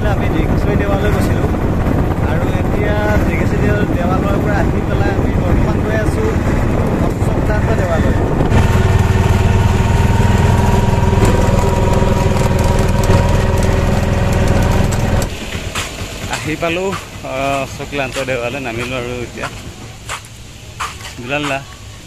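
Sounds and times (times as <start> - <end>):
man talking: 0.0 - 1.6, 2.2 - 8.3, 16.2 - 19.7, 21.2 - 21.7
auto-rickshaw engine droning: 0.0 - 20.6.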